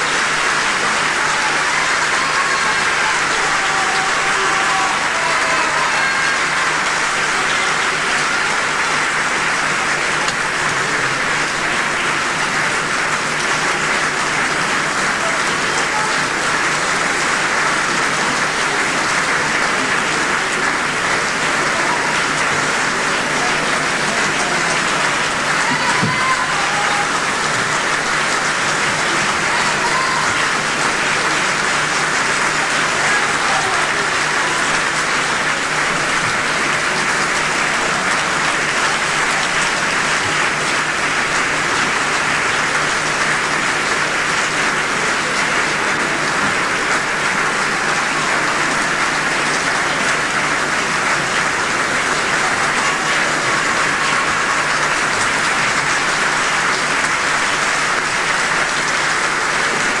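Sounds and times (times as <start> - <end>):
audience applauding: 0.0 - 60.0.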